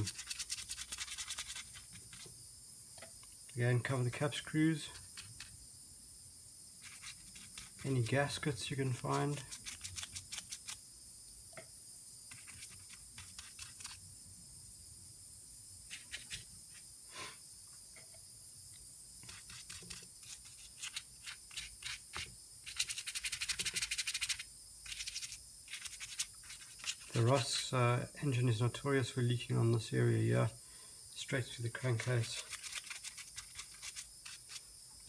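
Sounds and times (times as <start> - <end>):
paintbrush scrubbing metal: 0.0 - 2.3, 6.8 - 10.8, 12.3 - 14.0, 19.2 - 27.7, 31.7 - 34.6.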